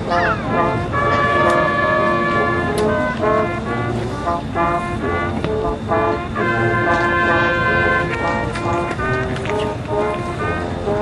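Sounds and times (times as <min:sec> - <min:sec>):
marching band brass and winds: 0:00.0 - 0:11.0.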